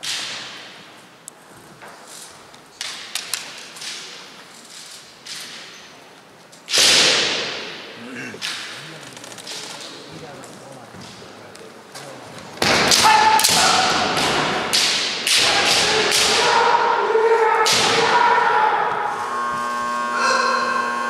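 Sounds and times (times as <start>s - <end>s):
bamboo swords clacking: 2.8s - 5.7s
shouts ringing in a hall: 12.9s - 14.6s, 15.3s - 21.0s.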